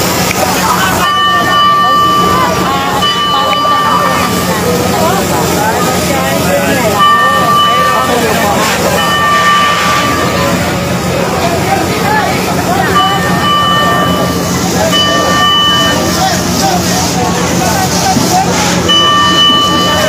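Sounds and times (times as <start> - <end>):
crowd voices: 0.0 - 20.0
high warning tone blasts: 0.0 - 20.0
low engine drone: 0.0 - 20.0.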